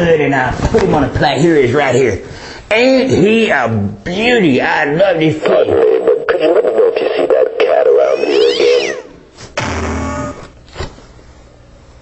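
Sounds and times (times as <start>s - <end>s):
loud burst with deep tone: 9.6s - 10.4s.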